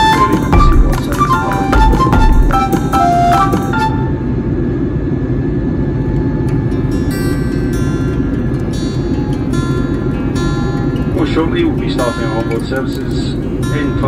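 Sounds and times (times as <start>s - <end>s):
guitar music: 0.0s - 4.3s, 6.5s - 14.0s
airliner cabin roar: 0.0s - 14.0s.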